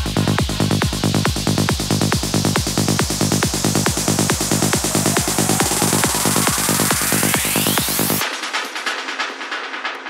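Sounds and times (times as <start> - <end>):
electronic dance music: 1.0 - 9.6.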